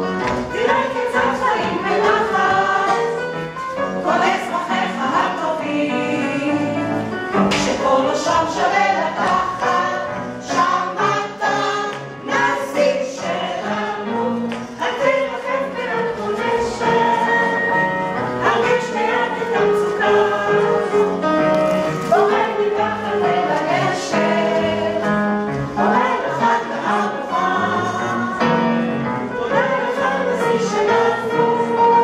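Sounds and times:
chorus singing: 0.0s - 32.0s
musical accompaniment: 0.0s - 32.0s.

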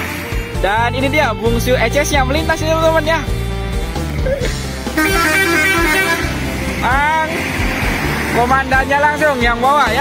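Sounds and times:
background music with bass line: 0.0s - 10.0s
multi-tone bus horn melody: 4.9s - 6.8s.

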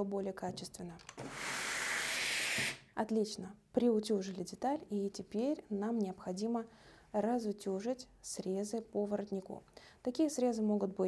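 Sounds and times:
steam iron hissing: 1.2s - 2.8s.

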